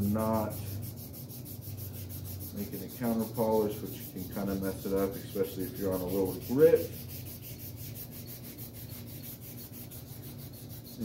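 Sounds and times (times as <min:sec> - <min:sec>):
abrasive paper rubbing on metal: 0:00.0 - 0:11.0.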